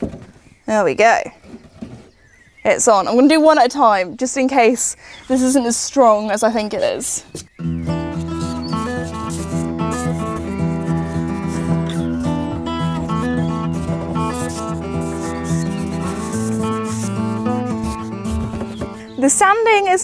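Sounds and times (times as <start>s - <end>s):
instrumental music with bass line: 7.6s - 19.2s
short high hissing strokes: 13.2s - 18.3s.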